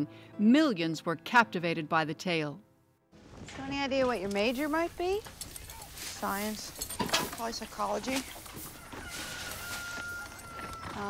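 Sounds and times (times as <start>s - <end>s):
chickens clucking: 7.4s - 11.0s.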